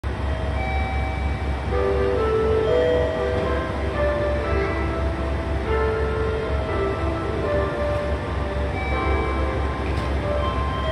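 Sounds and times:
faint steady tones: 0:00.0 - 0:10.9
train rumbling at platform: 0:00.0 - 0:10.9
chime melody: 0:00.1 - 0:10.9.

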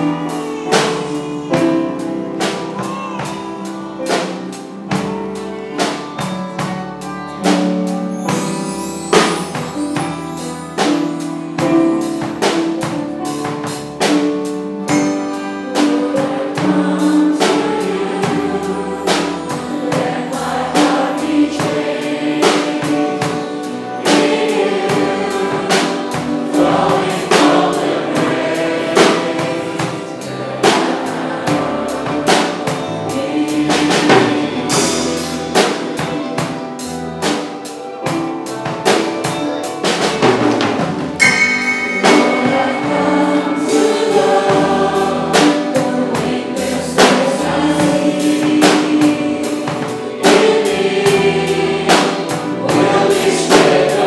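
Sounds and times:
crowd singing worship song: 0:00.0 - 0:06.8, 0:09.1 - 0:37.6, 0:39.8 - 0:54.0
drum kit beat: 0:00.0 - 0:54.0
live band: 0:00.0 - 0:54.0.

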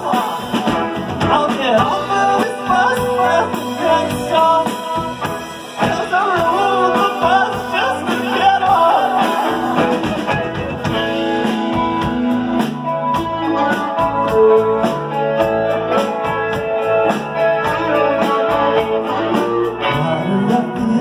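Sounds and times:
drum kit steady beat: 0:00.0 - 0:21.0
electric guitar lines: 0:00.0 - 0:21.0.

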